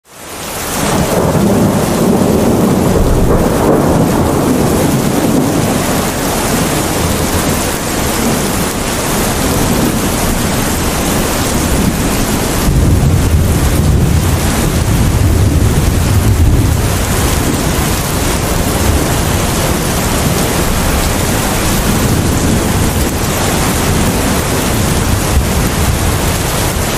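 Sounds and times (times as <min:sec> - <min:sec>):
heavy rain: 0:00.0 - 0:26.9
rolling thunder: 0:00.7 - 0:26.9.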